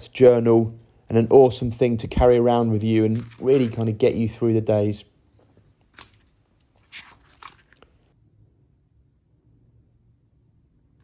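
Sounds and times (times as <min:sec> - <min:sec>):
paper pages rustling: 0:03.0 - 0:04.2, 0:05.4 - 0:08.1.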